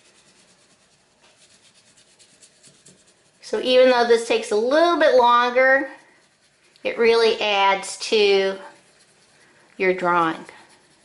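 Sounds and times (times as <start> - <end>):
crayon scratching on paper: 0.0 - 11.0.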